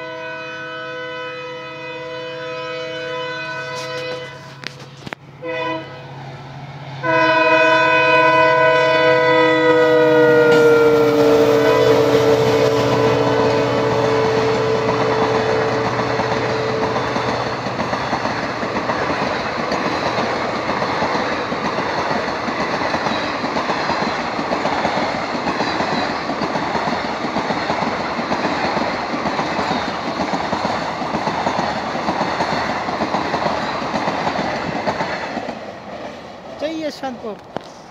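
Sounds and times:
locomotive horn blasts: 0.0 - 6.2, 7.0 - 17.4
train wheels clacking on rails: 9.1 - 37.7.

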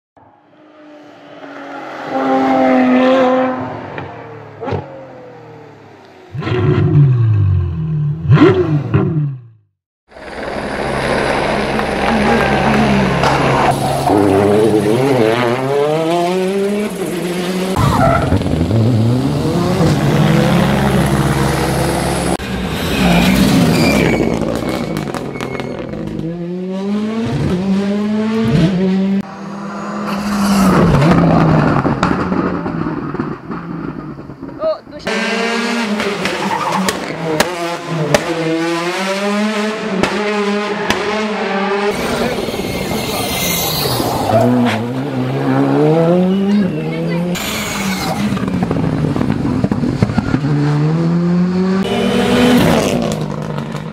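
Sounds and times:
rally car engines passing: 0.2 - 7.0, 10.2 - 34.3, 35.0 - 53.9
revving sound effect: 26.2 - 33.1.

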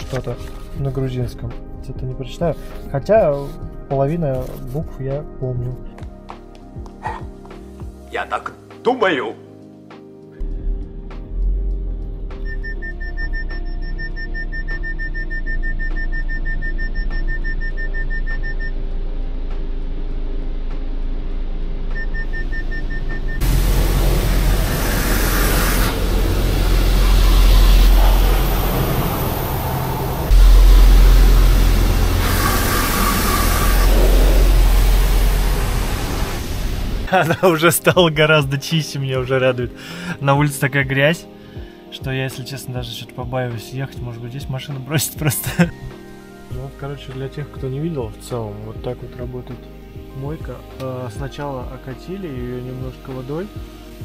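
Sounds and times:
background music: 0.0 - 54.0
car wash water jets spraying: 23.4 - 37.1.

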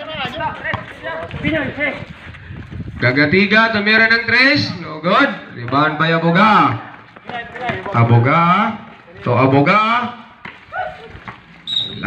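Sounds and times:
referee's whistle blast: 11.7 - 12.0.

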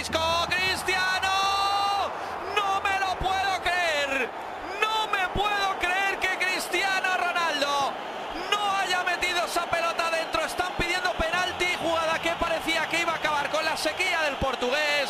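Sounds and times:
men talking: 0.0 - 15.0
stadium crowd noise: 0.0 - 15.0.

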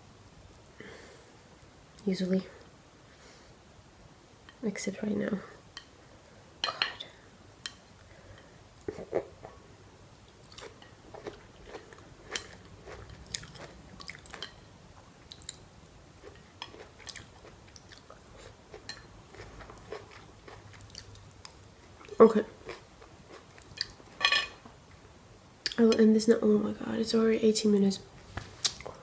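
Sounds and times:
close-up chewing: 10.4 - 14.6, 16.2 - 24.0.

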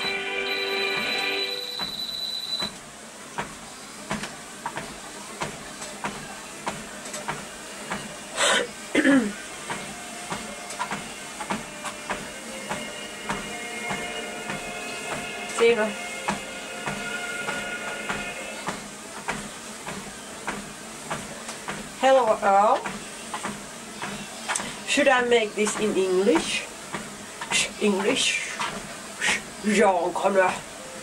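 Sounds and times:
background music: 0.0 - 1.8
treadmill running noise: 0.0 - 31.0
footfalls on treadmill belt: 2.6 - 8.2, 9.7 - 15.2, 16.3 - 22.0, 22.6 - 29.5.

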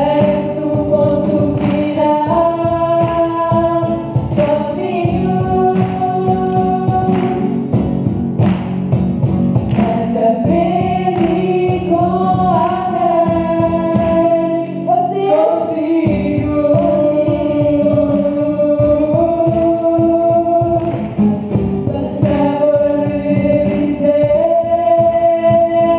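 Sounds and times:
young voices singing: 0.0 - 7.5, 9.7 - 25.9
box drum beat: 0.0 - 14.6, 15.8 - 25.9
acoustic guitar: 0.0 - 25.9.

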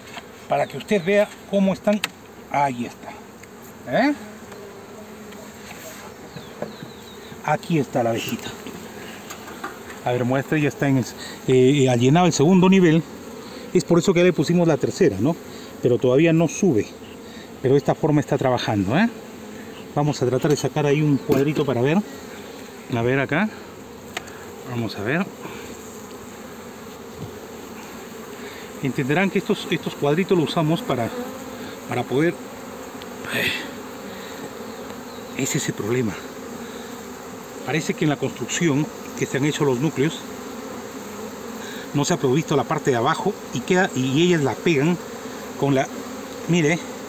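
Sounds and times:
honeybees buzzing: 0.0 - 47.0.

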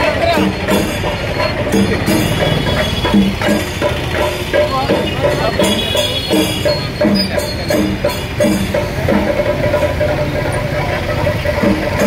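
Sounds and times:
crowd chatter: 0.0 - 12.0
traffic rumble: 0.0 - 12.0.

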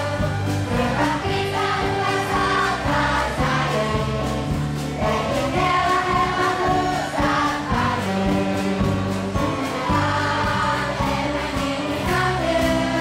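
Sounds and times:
children's choir singing: 0.0 - 13.0
low instrumental accompaniment: 0.0 - 13.0.

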